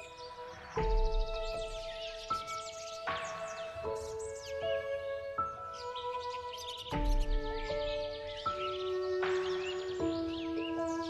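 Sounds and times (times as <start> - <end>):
birds chirping: 0.0 - 11.0
soft slow piano music: 0.0 - 11.0.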